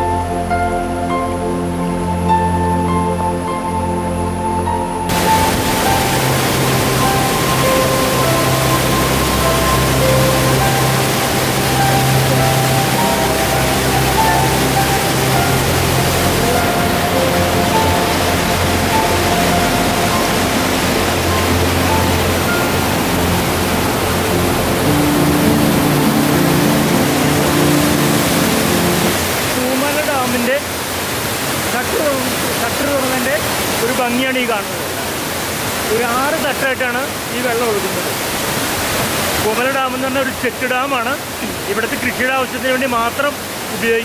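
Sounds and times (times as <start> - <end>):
soft background music: 0.0 - 30.6
water rushing over stone steps: 5.1 - 44.0.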